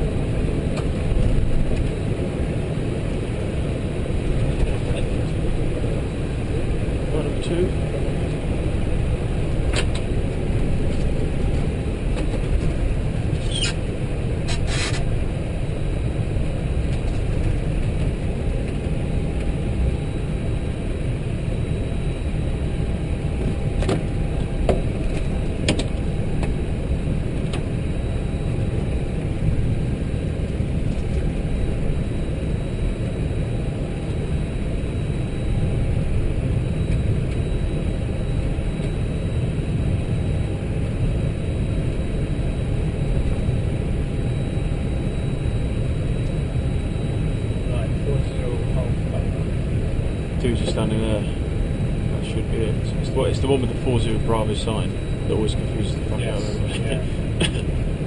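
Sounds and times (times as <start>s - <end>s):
short squeak: 13.4s - 13.8s, 14.5s - 15.0s
low rumble and hiss: 23.8s - 57.8s.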